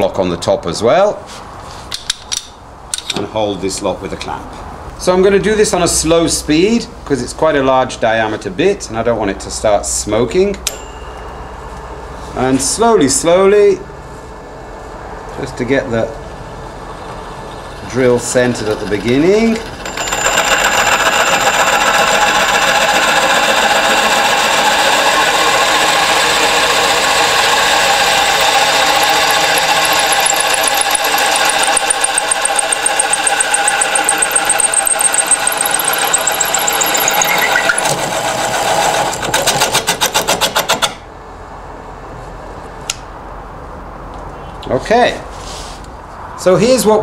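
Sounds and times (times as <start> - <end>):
drill press humming: 16.7 - 41.0
hole saw cutting wood: 17.5 - 41.0.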